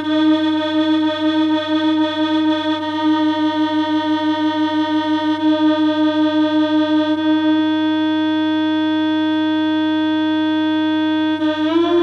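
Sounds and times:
synthesizer drone: 0.0 - 12.0.

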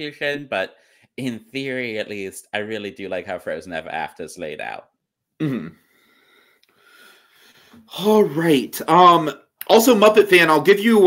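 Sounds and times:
person breathing close to microphone: 5.8 - 7.9.

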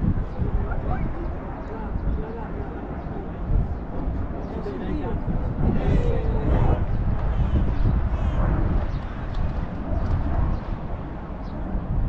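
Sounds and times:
wind buffeting microphone: 0.0 - 12.0
people talking indistinctly: 0.3 - 7.6.

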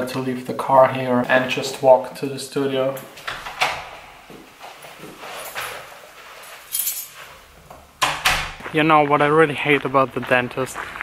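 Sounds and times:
footsteps: 3.0 - 11.0
door opening and shutting: 3.1 - 4.3, 7.7 - 8.6.

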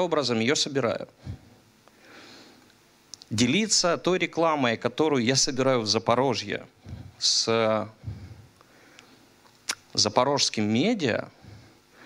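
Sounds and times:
man's low vocal sound: 6.8 - 7.2, 7.8 - 8.5.

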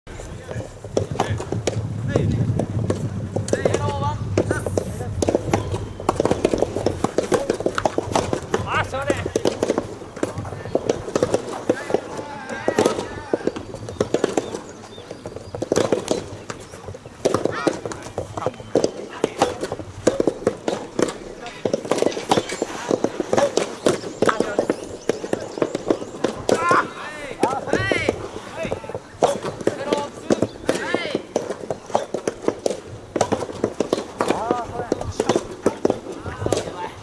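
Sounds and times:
people calling and talking: 0.1 - 37.0
tennis balls struck and bouncing: 0.1 - 37.0.

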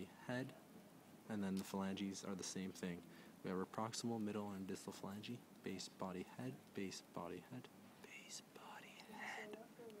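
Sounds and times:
person whispering: 8.0 - 10.0.

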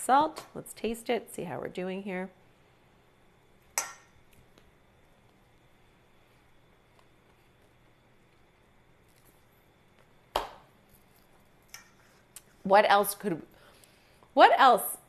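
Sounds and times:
metal spoon clinking on steel bowl: 3.8 - 4.2.

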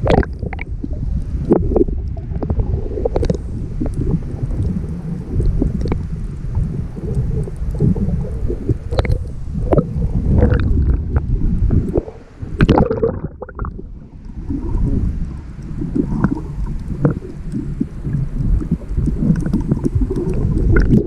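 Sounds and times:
muffled underwater sloshing: 0.0 - 21.0
water splashes: 0.0 - 21.0.

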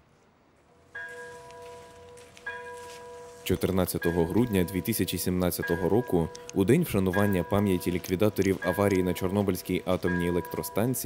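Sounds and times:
bell ringing: 1.0 - 11.0.

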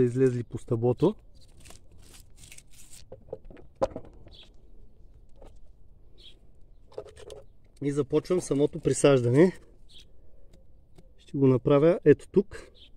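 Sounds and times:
leaves rustling: 0.0 - 3.2.

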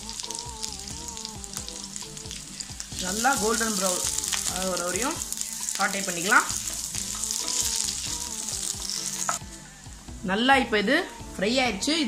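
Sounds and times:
onions sizzling in oil: 0.0 - 9.4.

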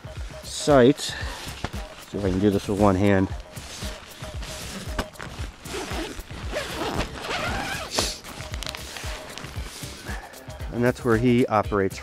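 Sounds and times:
canvas flap rustling: 1.3 - 10.1
tent zipper unzipping: 3.5 - 10.0.

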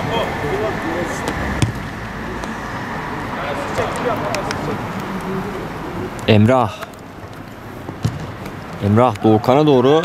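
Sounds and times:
players calling out: 0.0 - 10.0
ball being kicked: 1.2 - 1.9, 7.8 - 9.2.

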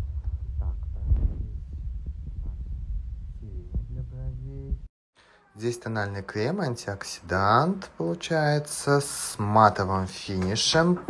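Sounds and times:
muffled voice: 0.0 - 1.7, 3.4 - 4.8
heavy low rumble: 0.0 - 4.9.

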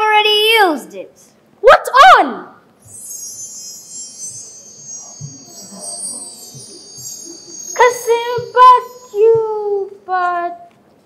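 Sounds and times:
shimmering chime sound effect: 2.8 - 9.4.

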